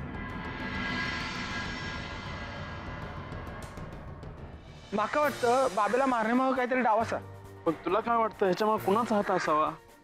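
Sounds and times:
rushing drone: 0.0s - 4.9s.

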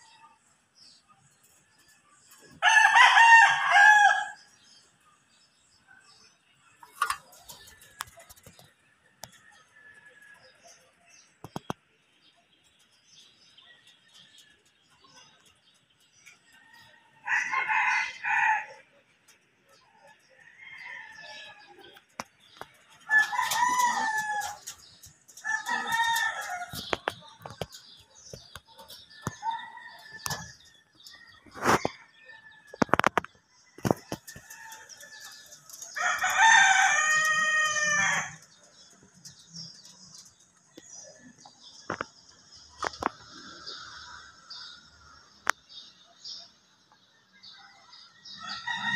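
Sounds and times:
rooster crowing: 2.6s - 4.4s, 23.1s - 24.6s, 25.4s - 26.8s, 36.0s - 38.4s, 48.2s - 48.9s.

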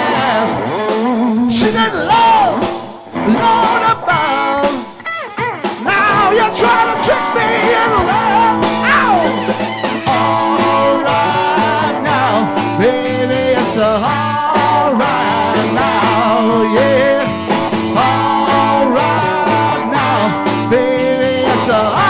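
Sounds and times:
drum kit beat: 0.0s - 22.0s
electric guitar lead line: 0.0s - 22.0s.

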